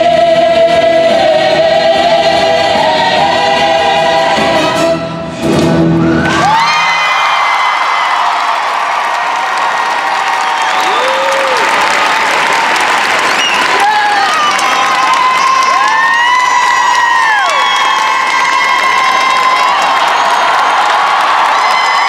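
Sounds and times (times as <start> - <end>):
cast singing with backing track: 0.0 - 5.2
audience applause and cheering: 5.7 - 22.0.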